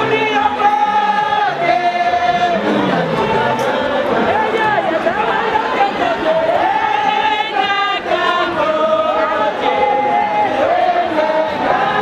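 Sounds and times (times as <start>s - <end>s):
group singing without instruments: 0.0s - 12.0s.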